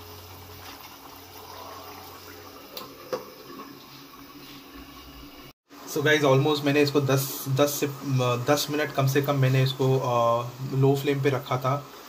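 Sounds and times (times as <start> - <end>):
gravy bubbling hiss: 0.0 - 12.0.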